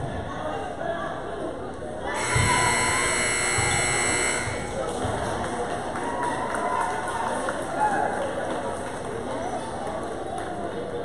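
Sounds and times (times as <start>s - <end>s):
scoreboard buzzer blare: 2.1s - 4.9s.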